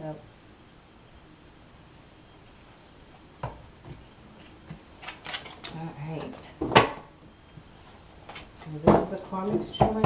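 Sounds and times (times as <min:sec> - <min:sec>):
cards clicking and rustling: 0:05.0 - 0:05.8.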